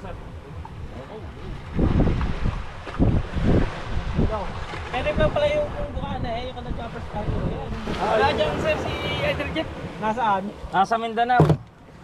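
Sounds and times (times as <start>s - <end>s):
wind buffeting microphone: 0.0s - 10.8s.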